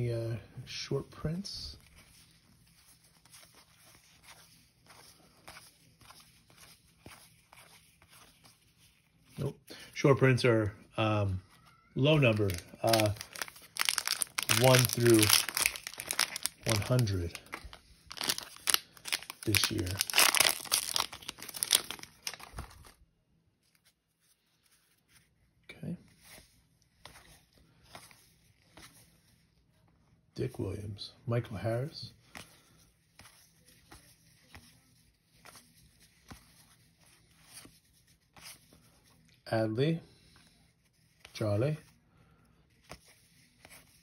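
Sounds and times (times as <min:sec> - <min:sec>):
plastic wrapper tearing and crinkling: 0:12.0 - 0:23.0.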